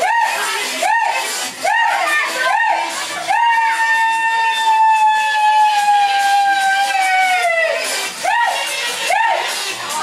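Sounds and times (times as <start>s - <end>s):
high-pitched celebratory whoop: 0.0s - 9.4s.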